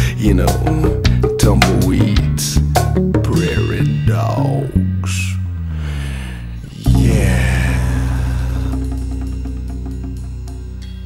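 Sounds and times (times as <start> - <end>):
pit band holding a chord: 6.7 - 9.9.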